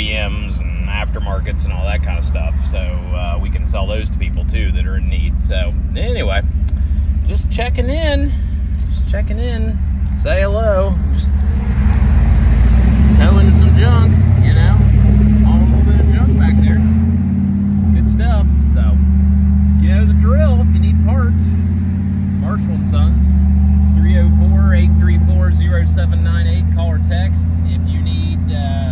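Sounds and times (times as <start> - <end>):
vehicle engine and road noise: 0.0 - 28.9.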